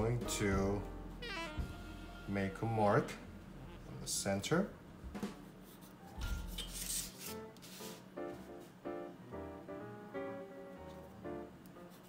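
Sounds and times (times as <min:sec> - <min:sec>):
quiet plucked background music: 0:00.0 - 0:12.0.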